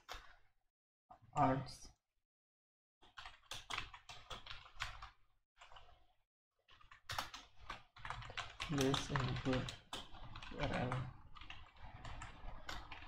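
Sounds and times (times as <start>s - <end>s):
computer keyboard typing: 3.0s - 6.0s, 6.7s - 13.0s.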